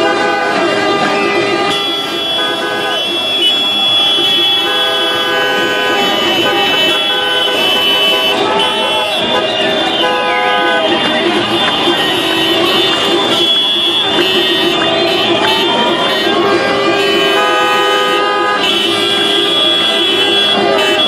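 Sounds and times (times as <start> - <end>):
car horns honking: 0.0 - 21.0
people shouting and chanting: 5.6 - 21.0.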